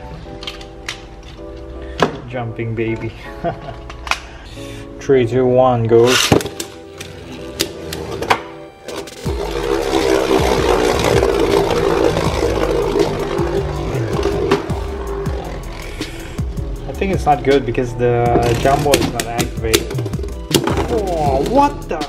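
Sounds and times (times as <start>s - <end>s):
background music: 0.0s - 22.0s
spinning tops whirring: 9.0s - 15.8s, 18.4s - 20.6s.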